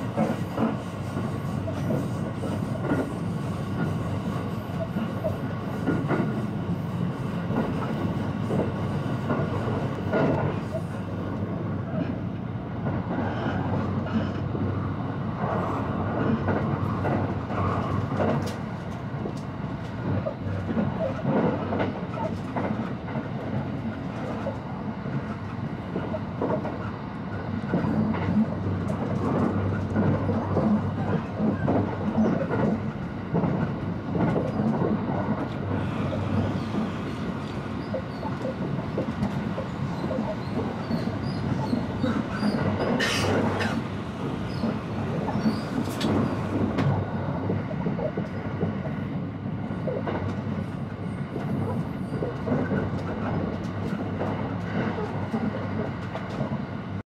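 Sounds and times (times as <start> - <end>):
train wheels rumbling on rails: 0.0 - 57.0.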